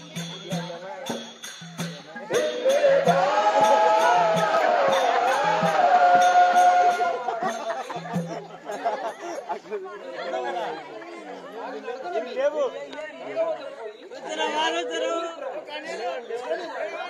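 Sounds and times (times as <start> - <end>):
voices talking over one another: 0.0 - 17.0.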